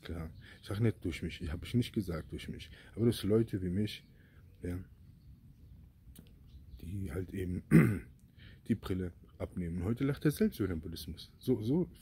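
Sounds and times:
man speaking: 0:00.0 - 0:04.0, 0:04.6 - 0:04.9, 0:06.8 - 0:08.0, 0:08.6 - 0:12.0.

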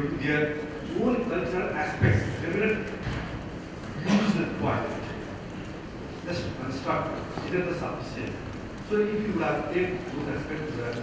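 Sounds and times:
man talking through sound system: 0:00.0 - 0:03.0, 0:04.0 - 0:05.3, 0:06.2 - 0:11.0.

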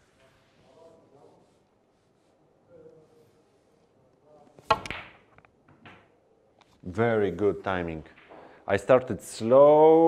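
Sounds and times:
cue tip striking ball: 0:04.7 - 0:05.3.

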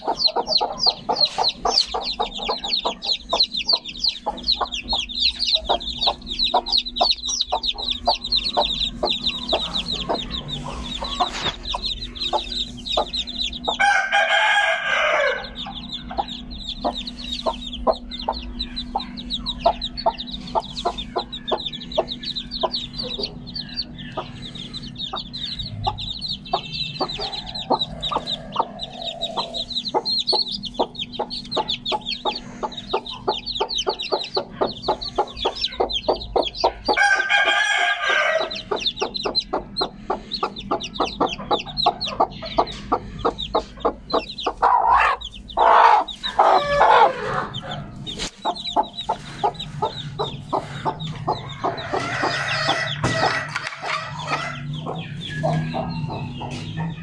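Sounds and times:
chicks peeping: 0:00.0 - 0:57.0
rooster crowing: 0:13.6 - 0:15.9, 0:27.0 - 0:29.8, 0:36.9 - 0:39.0, 0:44.7 - 0:48.0, 0:51.4 - 0:54.7.

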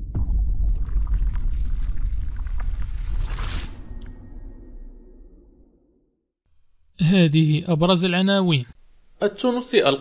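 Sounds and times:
deep bass rumble: 0:00.0 - 0:05.8.

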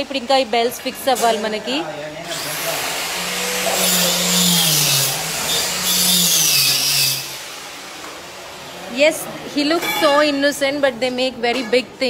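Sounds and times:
electric power tool grinding: 0:02.2 - 0:08.8.

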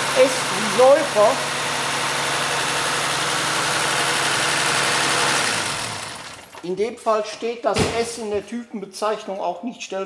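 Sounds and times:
car engine idling: 0:00.0 - 0:06.6.

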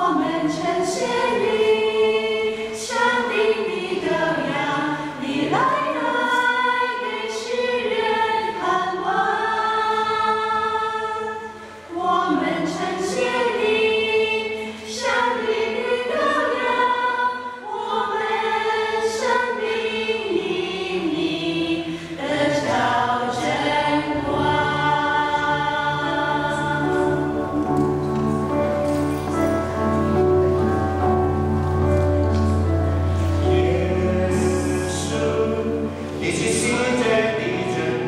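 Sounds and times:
choir singing a hymn: 0:00.0 - 0:38.0.

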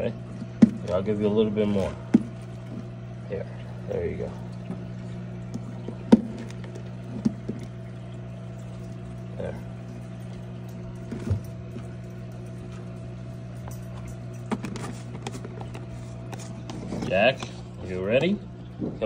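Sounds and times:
aquarium filter humming: 0:00.0 - 0:19.0.

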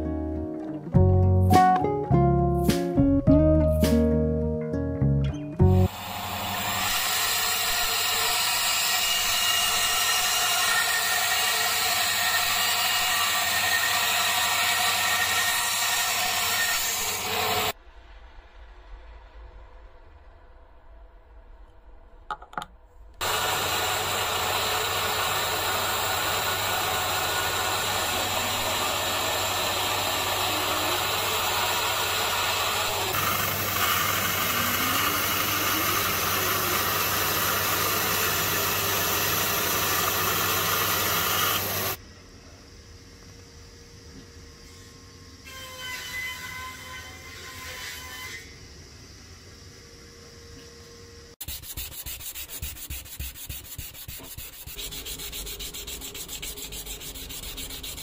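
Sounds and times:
band saw cutting: 0:05.7 - 0:17.8, 0:23.2 - 0:42.0, 0:51.4 - 0:58.0
sanding by hand: 0:23.2 - 0:42.0, 0:51.4 - 0:58.0.

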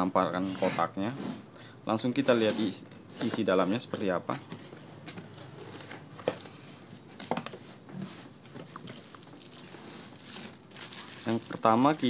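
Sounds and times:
plastic wrapping crinkling: 0:08.4 - 0:12.0.

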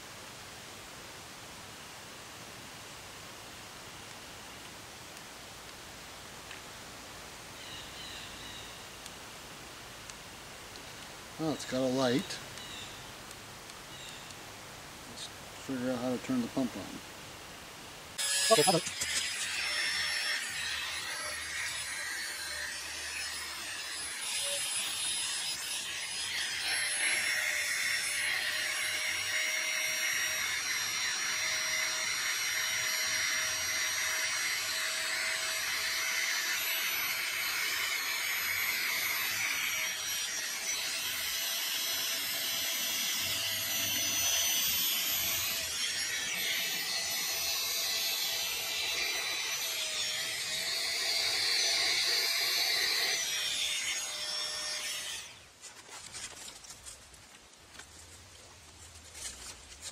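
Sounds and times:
electric air pump running: 0:18.2 - 0:54.8.

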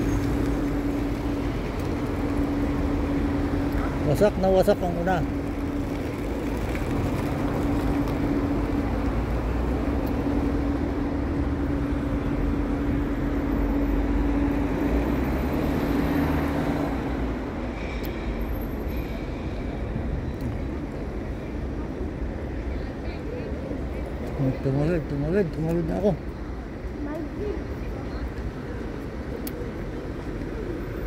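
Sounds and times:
continuous low traffic rumble: 0:00.0 - 0:31.0.

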